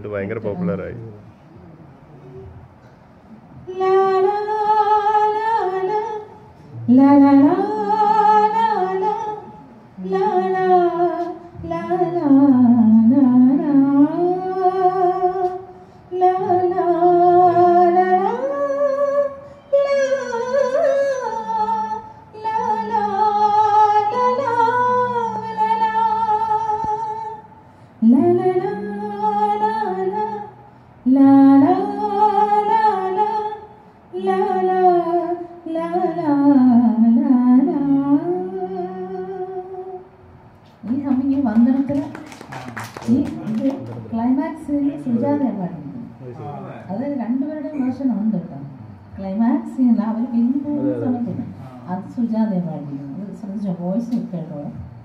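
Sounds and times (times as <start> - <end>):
woman singing into a microphone: 3.6 - 40.2, 43.1 - 46.1.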